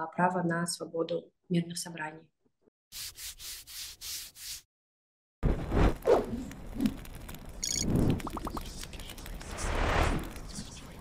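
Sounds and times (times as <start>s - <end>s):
whoosh: 9.4s - 10.4s.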